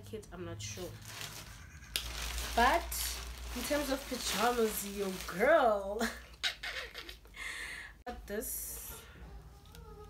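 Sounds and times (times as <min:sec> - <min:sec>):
fabric rustling: 0:00.8 - 0:06.0
woman laughing: 0:06.0 - 0:07.9.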